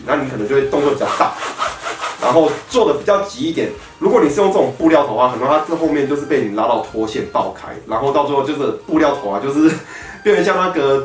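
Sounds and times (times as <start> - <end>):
man speaking: 0.0 - 1.4, 2.2 - 11.0
nylon fabric rustling: 0.7 - 6.6.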